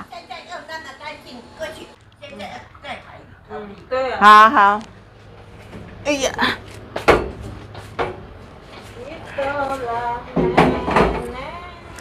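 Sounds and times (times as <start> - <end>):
woman speaking: 3.9 - 4.9, 6.0 - 6.6, 9.0 - 12.0.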